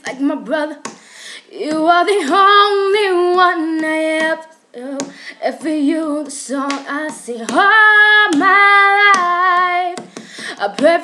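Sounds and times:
woman singing unaccompanied: 0:00.0 - 0:11.0.

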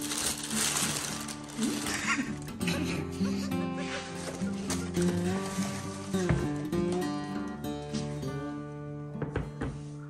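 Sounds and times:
tissue paper crinkling: 0:00.0 - 0:02.6, 0:03.8 - 0:07.3
background music with held notes: 0:00.0 - 0:10.0.

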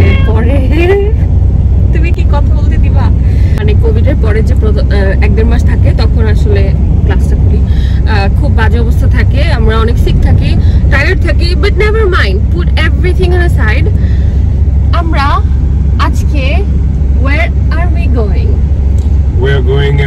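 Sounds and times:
people talking: 0:00.0 - 0:01.3, 0:01.9 - 0:14.2, 0:14.9 - 0:18.6, 0:19.4 - 0:20.0
car road and engine rumble: 0:00.0 - 0:20.0.

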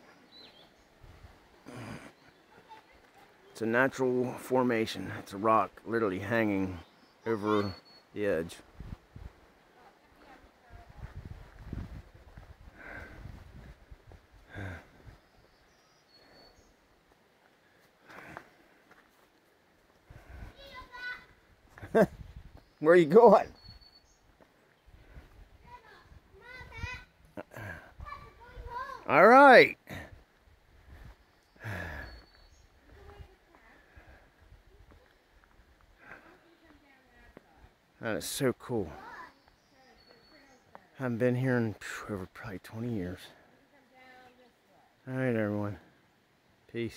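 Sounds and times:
faint outdoor background: 0:00.0 - 0:46.9
low rumbling microphone noise: 0:08.6 - 0:09.7, 0:10.4 - 0:15.7.

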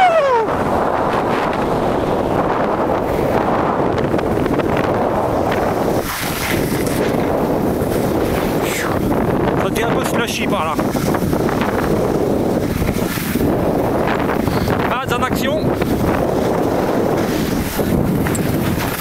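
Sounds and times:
wind rushing over microphone: 0:00.0 - 0:19.0.

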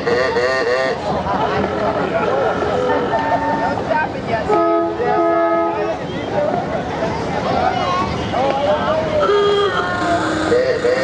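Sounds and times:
crowd chatter: 0:00.0 - 0:11.0
multi-note horn blasts: 0:04.5 - 0:05.9, 0:09.2 - 0:11.0.

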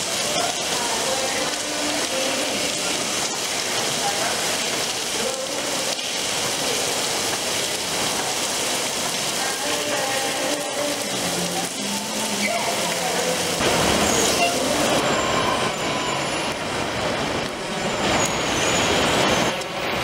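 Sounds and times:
waterfall splashing down stone: 0:00.0 - 0:20.0
faint voices: 0:09.3 - 0:15.8.

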